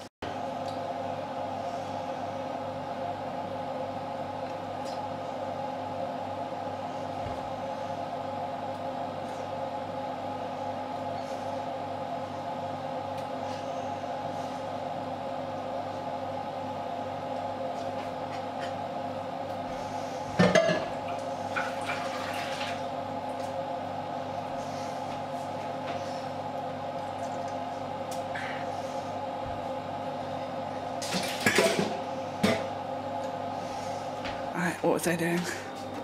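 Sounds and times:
steady hum: 0.0 - 36.0.

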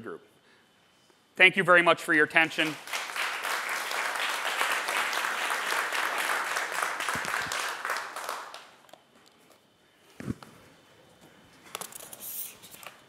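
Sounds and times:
audience applauding: 2.4 - 8.8.

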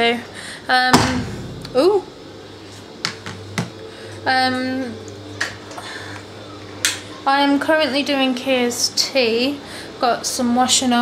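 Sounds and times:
low steady hum: 0.9 - 5.0.

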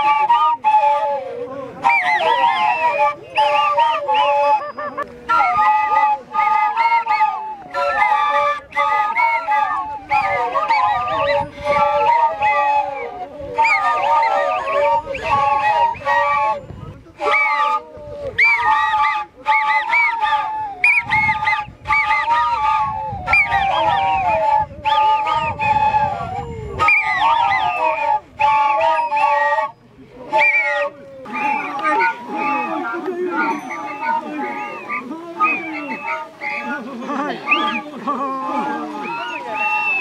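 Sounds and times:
flutes playing a dance tune: 0.0 - 40.0.

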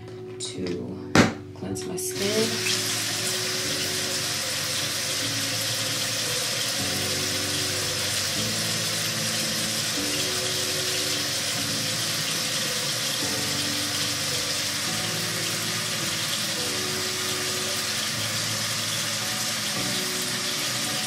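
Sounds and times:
tap water running into sink: 2.2 - 21.0.

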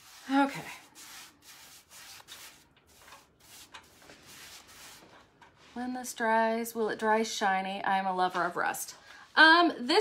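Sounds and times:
paintbrush brushing on metal: 0.0 - 5.8.

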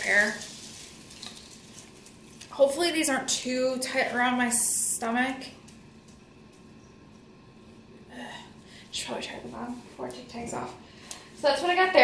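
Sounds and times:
woman speaking: 0.0 - 0.5, 2.5 - 5.6, 8.1 - 10.8, 11.4 - 12.0.

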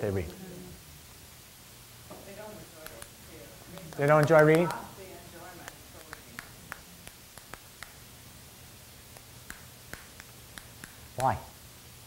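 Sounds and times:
plastic marker clicking: 2.8 - 3.2.

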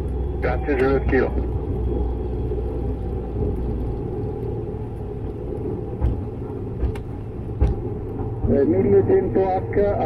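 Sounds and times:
wheel rumbling on wet runway: 0.0 - 10.0
short bumps: 5.2 - 8.9.

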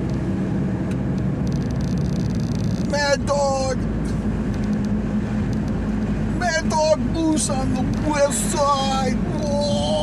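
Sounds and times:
engine and road noise drone: 0.0 - 10.0.

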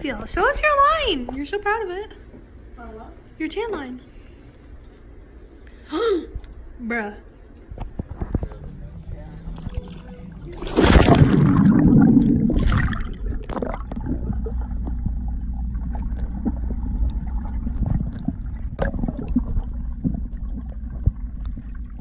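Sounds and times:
muffled underwater rumble: 7.8 - 22.0
loud splash into pool: 10.6 - 14.1
underwater clicks and bubbling: 10.7 - 22.0.

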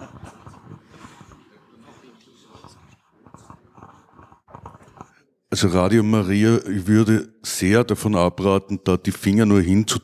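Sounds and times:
microphone handling clicks and rustles: 0.0 - 1.5, 2.5 - 5.2.

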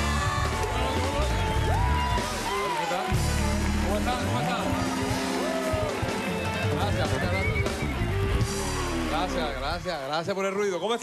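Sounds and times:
music with steady bass line: 0.0 - 10.1
audience clapping and cheering: 0.0 - 11.0.

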